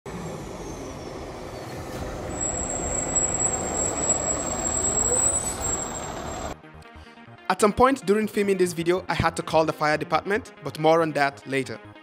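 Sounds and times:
diesel truck engine: 0.0s - 6.6s.

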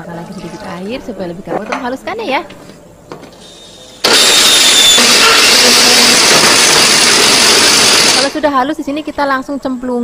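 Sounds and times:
blender running: 4.0s - 8.4s.

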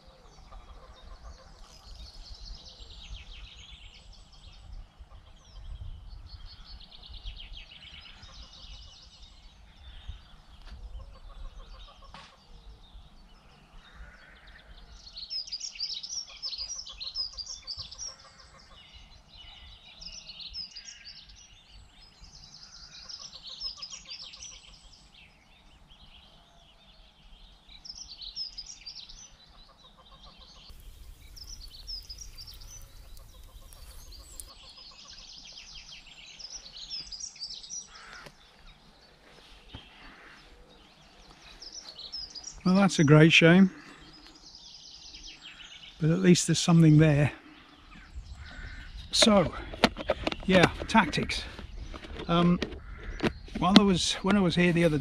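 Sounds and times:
songbirds singing: 0.0s - 55.0s
wind rumble on microphone: 1.8s - 11.7s, 30.7s - 34.5s, 47.9s - 53.7s.

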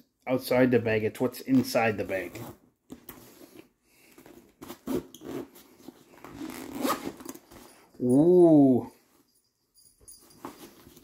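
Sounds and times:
zipper rasping open: 4.6s - 7.6s.

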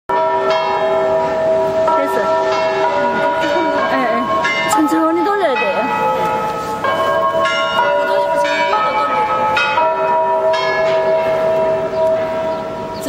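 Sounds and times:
church bells pealing: 0.1s - 13.0s.

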